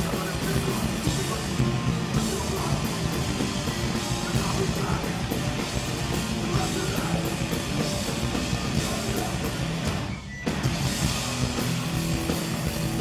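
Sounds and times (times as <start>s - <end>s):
punk band playing: 0.0s - 13.0s.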